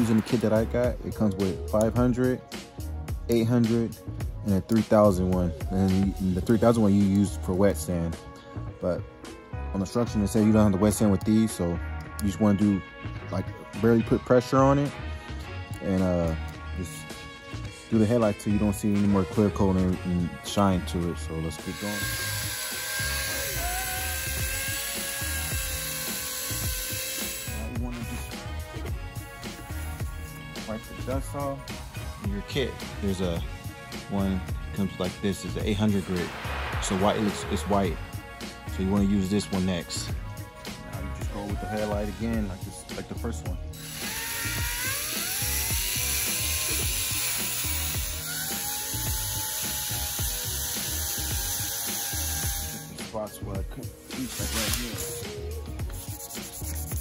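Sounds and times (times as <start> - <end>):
background music: 0.0 - 57.0
drill motor whine: 21.6 - 27.7, 43.8 - 53.0
sanding hiss: 54.0 - 57.0.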